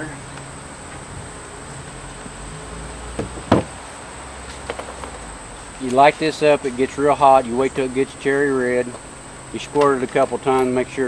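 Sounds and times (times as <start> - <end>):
insects humming: 0.0 - 11.0.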